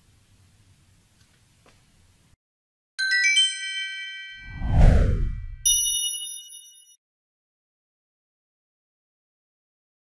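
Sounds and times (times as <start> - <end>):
bell-like chime chord: 3.0 - 7.0
downward whoosh: 4.4 - 5.6
low rumble: 4.5 - 5.7.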